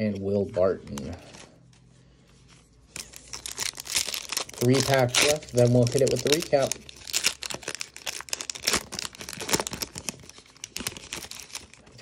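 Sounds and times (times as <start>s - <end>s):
foil wrapper tearing and crinkling: 3.0s - 12.0s.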